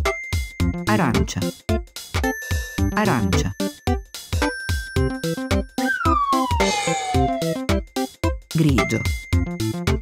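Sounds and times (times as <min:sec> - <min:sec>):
upbeat background music: 0:00.0 - 0:10.0
cartoon falling whistle: 0:05.8 - 0:07.7.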